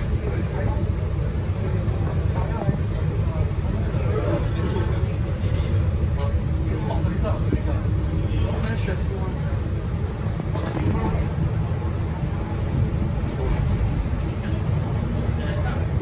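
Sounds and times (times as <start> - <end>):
bus engine low rumble: 0.0 - 16.0.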